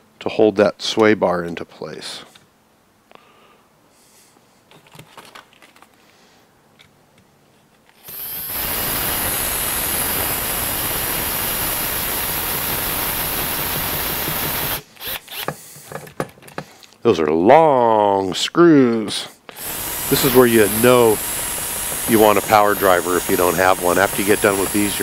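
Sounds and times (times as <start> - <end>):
power drill driving a screw: 8.0 - 15.6, 19.5 - 25.0.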